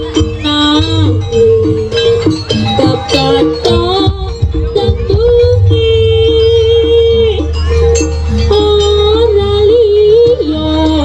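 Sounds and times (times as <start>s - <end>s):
light percussion: 0.0s - 11.0s
wavering high melody line: 0.0s - 11.0s.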